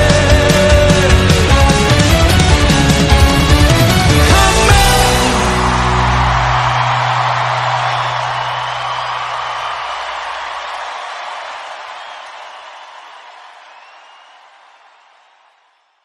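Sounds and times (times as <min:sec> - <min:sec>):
live band final chord: 0:00.0 - 0:08.7
crowd cheering: 0:00.0 - 0:16.0.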